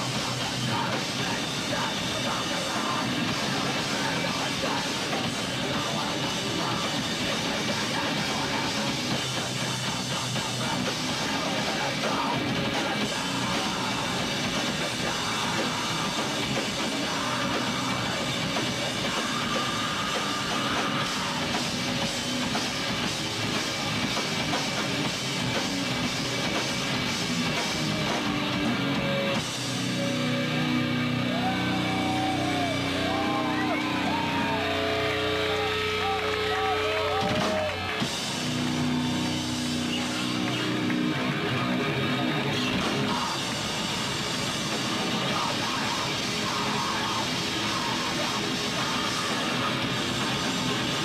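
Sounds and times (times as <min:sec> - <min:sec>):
bass guitar: 0:00.0 - 0:51.0
distorted electric guitar: 0:00.0 - 0:51.0
drum kit: 0:00.0 - 0:51.0
grindcore band playing: 0:00.0 - 0:51.0.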